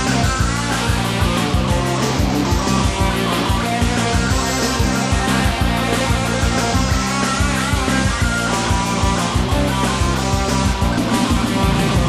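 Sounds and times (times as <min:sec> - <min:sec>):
rock band instrumental: 0:00.0 - 0:12.0.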